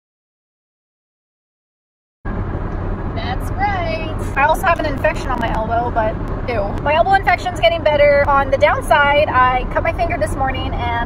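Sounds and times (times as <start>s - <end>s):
car cabin road noise: 2.3s - 11.0s
woman speaking: 3.2s - 11.0s.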